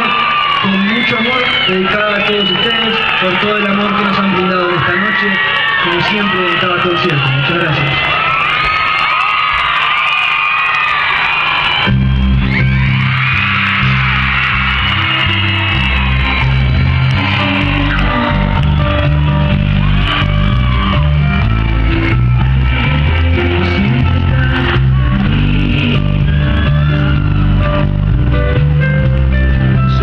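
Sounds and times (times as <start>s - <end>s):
crowd cheering and whooping: 0.0s - 30.0s
live band playing with strong bass: 11.8s - 30.0s.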